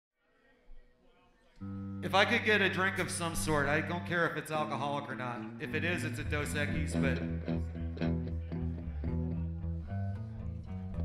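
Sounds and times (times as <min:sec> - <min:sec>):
bass guitar: 0:01.6 - 0:04.8, 0:05.4 - 0:11.0
electric guitar: 0:01.6 - 0:11.0.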